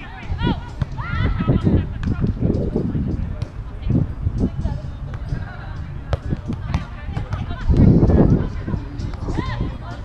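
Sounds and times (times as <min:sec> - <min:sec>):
faint players' voices: 0:00.0 - 0:10.0.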